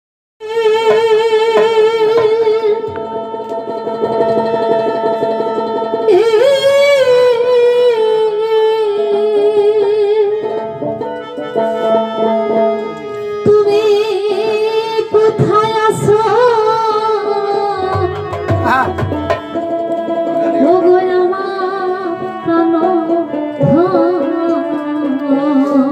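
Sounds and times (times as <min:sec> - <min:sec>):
woman singing into a microphone: 0:00.4 - 0:18.8, 0:19.4 - 0:25.9
plucked string instrument: 0:00.4 - 0:25.9.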